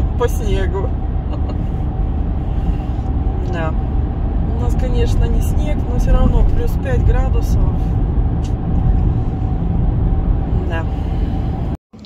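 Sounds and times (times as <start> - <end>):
car engine and tyre rumble: 0.0 - 11.8.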